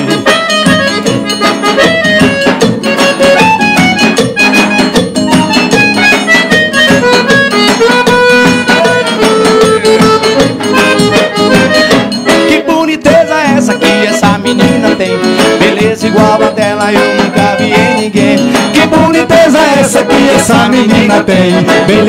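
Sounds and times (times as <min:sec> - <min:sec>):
accordion melody: 0:00.0 - 0:22.0
band playing: 0:00.0 - 0:22.0
drum and percussion beat: 0:00.0 - 0:22.0
strummed acoustic guitar: 0:00.0 - 0:22.0.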